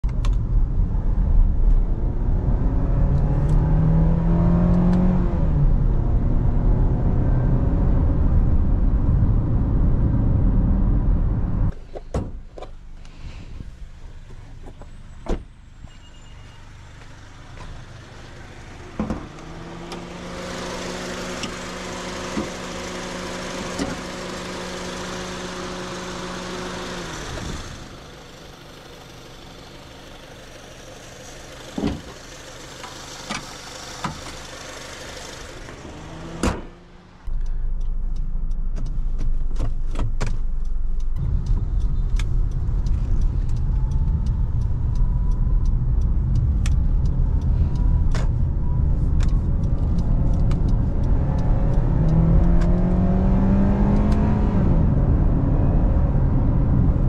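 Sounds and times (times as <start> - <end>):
road noise: 0.0 - 57.0
car engine revving: 0.8 - 11.7, 17.3 - 57.0.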